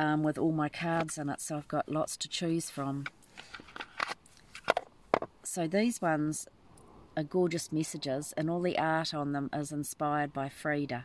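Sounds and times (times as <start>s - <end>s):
cards rustling in a box: 3.2s - 4.9s.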